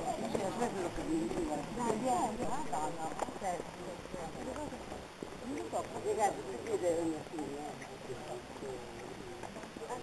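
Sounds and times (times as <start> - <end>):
footsteps on road: 0.0 - 10.0.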